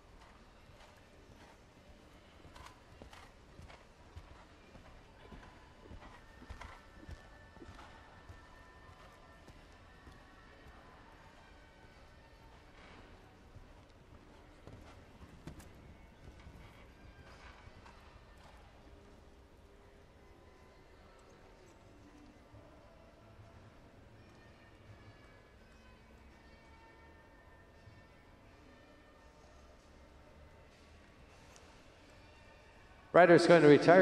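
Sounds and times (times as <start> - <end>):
horse hoofbeats on sand: 0.1 - 10.4, 12.4 - 18.9.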